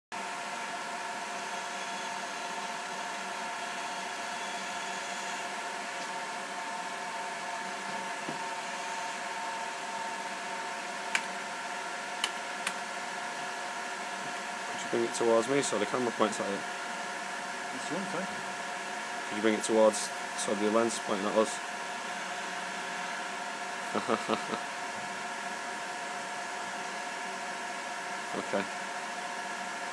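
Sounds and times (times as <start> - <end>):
camera motors humming and whining: 0.2 - 29.9
sharp clicks: 12.2 - 12.8.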